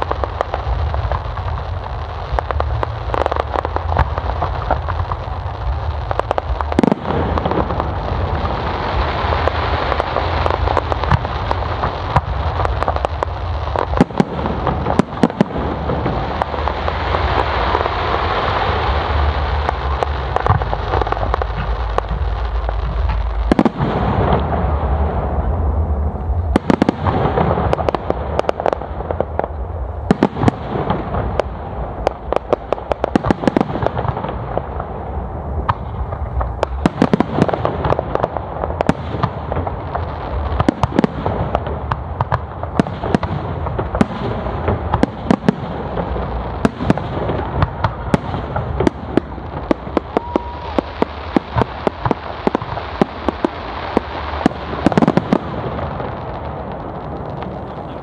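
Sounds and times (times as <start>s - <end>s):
continuous fireworks rumble: 0.0s - 58.0s
firework shells bursting with bangs: 35.6s - 58.0s.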